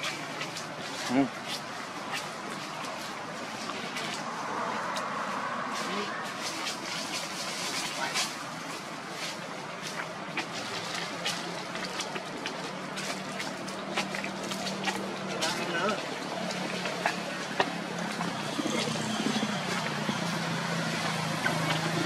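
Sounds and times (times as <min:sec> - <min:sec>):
low engine hum: 0:00.0 - 0:22.0.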